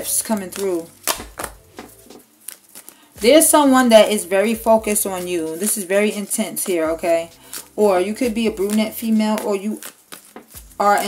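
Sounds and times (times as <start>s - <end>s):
card slaps on table: 0.6s - 2.2s.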